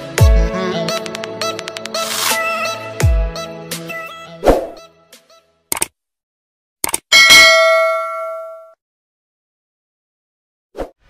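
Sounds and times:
notification bell ding: 7.2 - 8.8.

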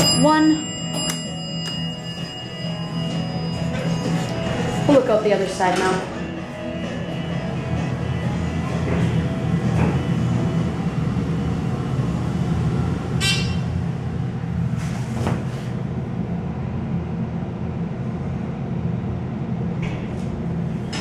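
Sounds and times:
elevator humming: 0.0 - 21.0.

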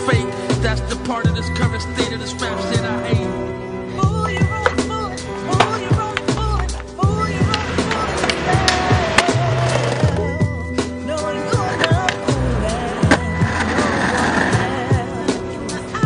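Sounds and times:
hip-hop beat with heavy bass: 0.0 - 16.0
skateboard wheels rolling: 4.2 - 10.3, 11.4 - 16.0
skateboard clacks: 4.4 - 4.9, 5.6 - 6.8, 7.4 - 10.2, 11.6 - 12.4.

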